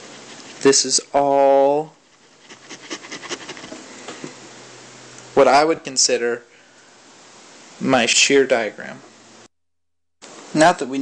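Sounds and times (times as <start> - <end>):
stylus scratching on drawing tablet: 0.0 - 3.8.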